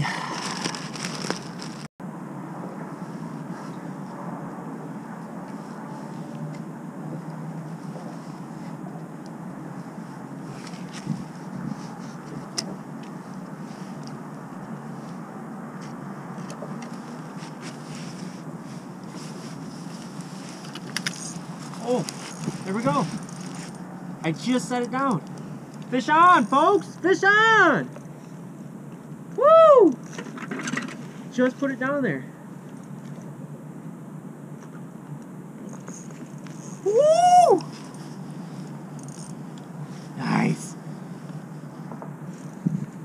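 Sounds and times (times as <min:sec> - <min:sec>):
outdoor background hush: 0:00.0 - 0:43.0.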